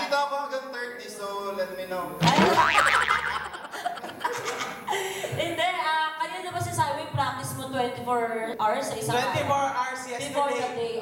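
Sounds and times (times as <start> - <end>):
laughter into a microphone: 2.5 - 5.5.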